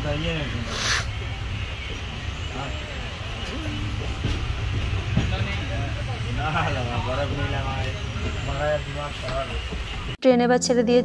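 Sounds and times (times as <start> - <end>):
indistinct voices: 0.0 - 11.0
train low rumble: 0.0 - 11.0.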